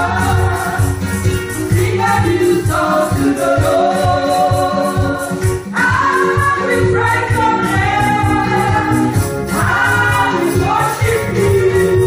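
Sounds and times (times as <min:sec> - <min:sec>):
women's choir singing gospel: 0:00.0 - 0:12.0.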